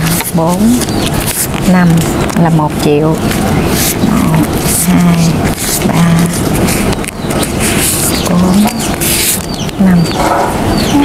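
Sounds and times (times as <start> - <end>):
banknotes rustling: 0.0 - 10.0
steady background noise: 0.0 - 11.0.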